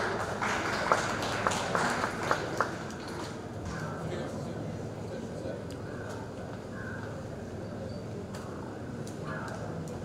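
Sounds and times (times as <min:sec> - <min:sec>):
audience applauding: 0:00.0 - 0:03.4.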